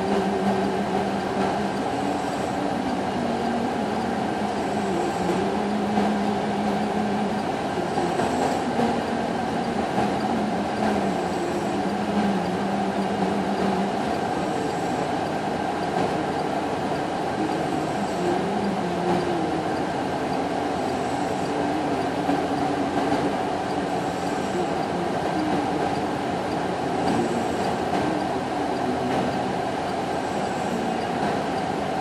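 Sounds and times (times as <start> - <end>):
diesel engines and hydraulic drive hum: 0.0 - 32.0.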